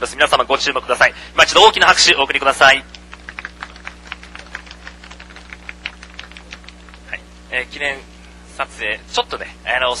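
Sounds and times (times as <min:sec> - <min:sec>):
light applause from small crowd: 0:02.6 - 0:07.2.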